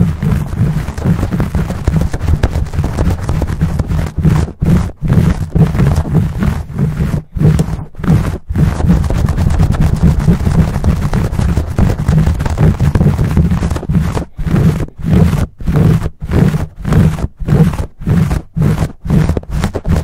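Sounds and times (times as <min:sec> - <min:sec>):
fingers scratching microphone cover: 0:00.0 - 0:20.0.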